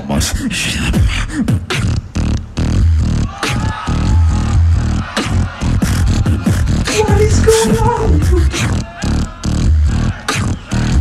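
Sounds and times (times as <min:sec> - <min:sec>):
beatboxing through microphone: 0:00.0 - 0:03.7, 0:04.6 - 0:11.0.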